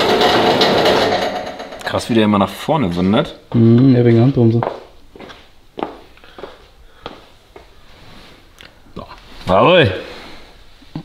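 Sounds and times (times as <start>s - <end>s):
small machine rattling buzz: 0.0s - 2.2s.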